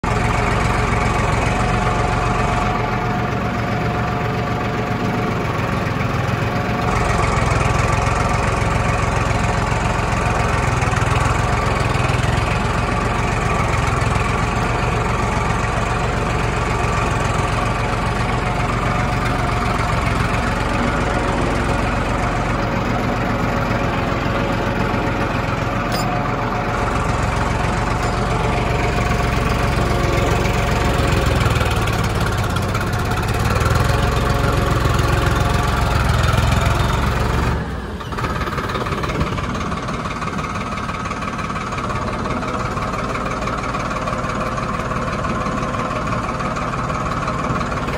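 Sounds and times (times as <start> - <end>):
tractor diesel engine under load: 0.0 - 47.9.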